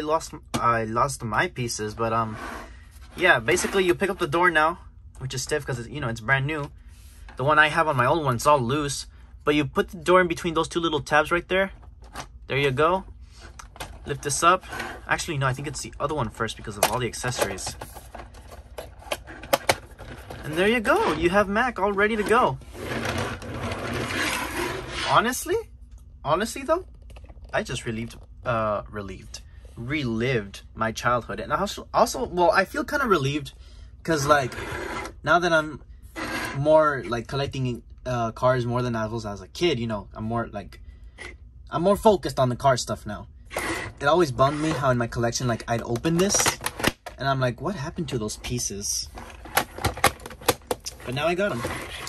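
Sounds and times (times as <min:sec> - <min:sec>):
rubbing and scraping handling noise: 0:01.6 - 0:04.6, 0:06.3 - 0:08.6, 0:11.2 - 0:25.5, 0:34.1 - 0:35.2, 0:36.0 - 0:36.9, 0:43.5 - 0:47.2, 0:47.8 - 0:52.0.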